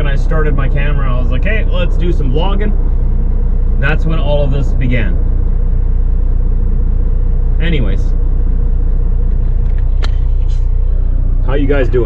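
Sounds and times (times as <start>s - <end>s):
diesel truck engine idling: 0.0s - 12.0s.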